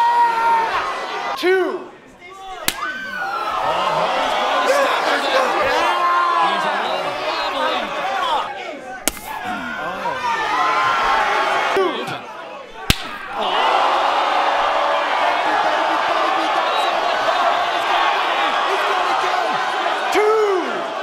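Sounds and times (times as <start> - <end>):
crowd cheering: 0.0 - 21.0
open-hand slap: 2.6 - 2.9, 9.0 - 9.4, 12.8 - 13.3.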